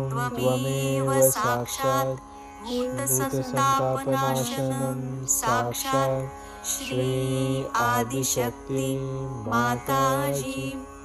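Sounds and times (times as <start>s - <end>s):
held drone accompaniment: 0.0s - 11.0s
person chanting melodically: 0.0s - 11.0s.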